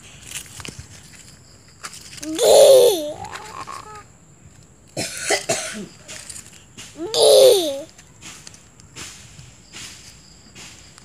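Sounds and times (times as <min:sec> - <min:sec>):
person making breathy bursts: 0:07.0 - 0:07.9.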